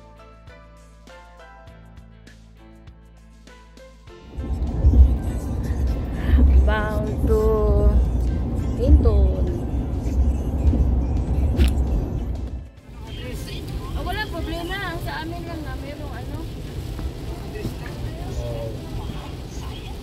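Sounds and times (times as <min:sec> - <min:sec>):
road rumble inside truck cab: 0:04.2 - 0:20.0
voices: 0:04.9 - 0:08.1, 0:08.7 - 0:09.7, 0:12.9 - 0:20.0
person speaking in car: 0:06.1 - 0:09.7, 0:12.9 - 0:16.6, 0:17.3 - 0:20.0.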